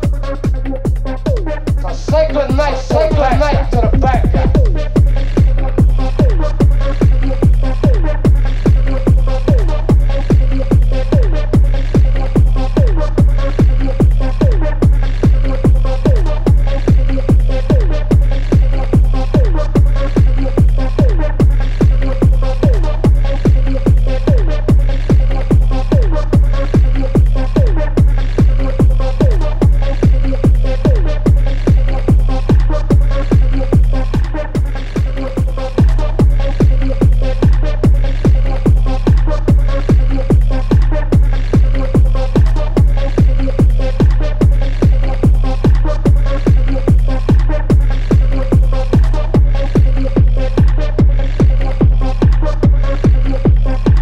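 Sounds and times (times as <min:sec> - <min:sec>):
hard techno music: 0:00.0 - 0:54.0
kick drum with deep bass: 0:00.0 - 0:54.0.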